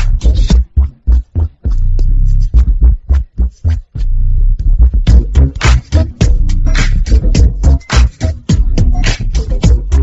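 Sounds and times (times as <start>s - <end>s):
deep bass notes: 0.0s - 10.0s.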